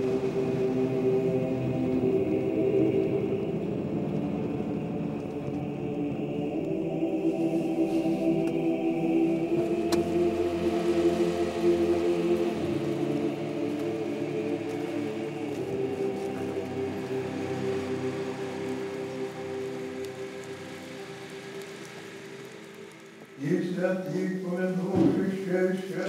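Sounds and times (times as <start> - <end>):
slow sustained chords music: 0.0 - 26.0.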